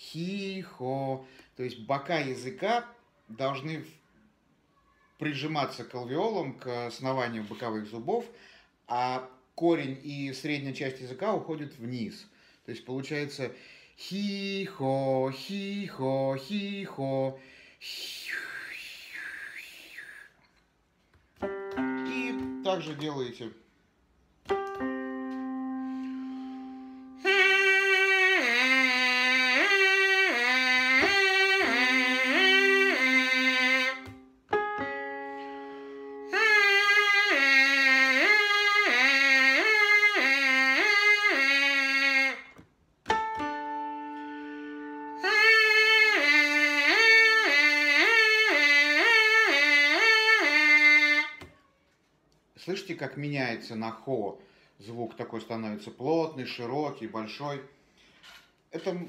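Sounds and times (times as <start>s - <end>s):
held keyboard chord: 21.4s - 23.2s, 24.4s - 28.2s, 31.0s - 36.4s, 43.1s - 45.3s
trumpet mouthpiece buzzing slurs: 27.2s - 34.2s, 36.3s - 42.4s, 44.0s - 51.4s.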